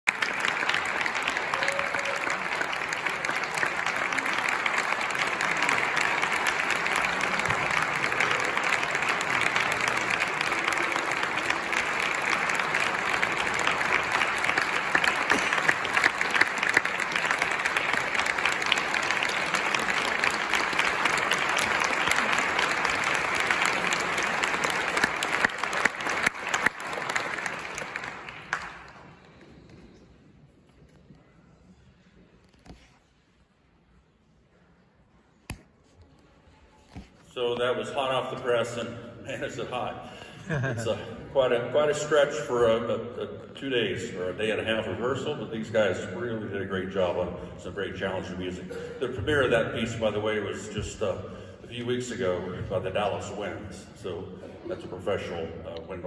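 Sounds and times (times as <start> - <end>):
audience applauding: 0.0 - 29.7.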